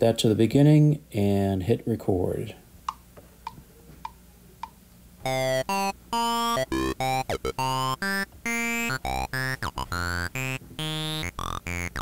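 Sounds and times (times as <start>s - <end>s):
synthesizer arpeggio: 5.3s - 12.0s.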